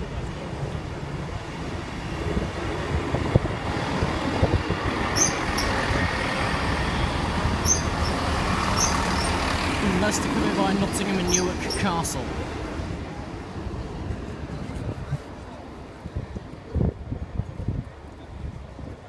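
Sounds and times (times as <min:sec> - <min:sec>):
train passing with low rumble: 0:00.0 - 0:19.0
high-pitched squeaks: 0:05.2 - 0:05.9, 0:07.6 - 0:09.4.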